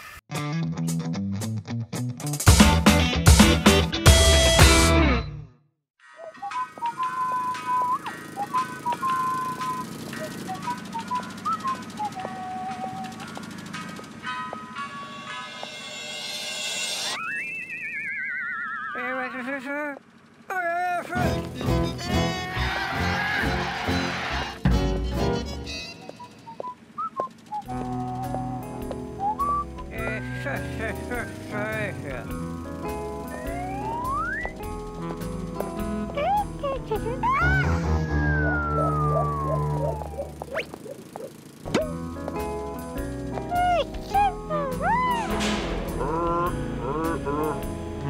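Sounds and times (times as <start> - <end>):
cartoon music: 6.0 - 15.3, 17.0 - 19.5, 27.6 - 42.4, 43.0 - 48.0
wobbling tone sliding down: 37.3 - 41.3, 44.6 - 48.0.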